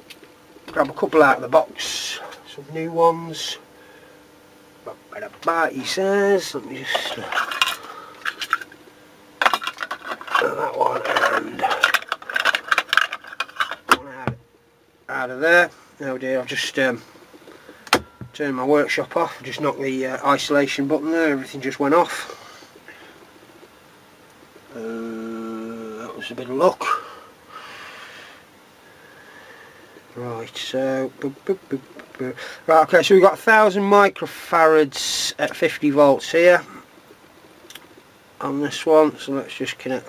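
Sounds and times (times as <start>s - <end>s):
faint room noise: 0.0s - 40.0s
small components rattling in a box: 9.4s - 14.0s.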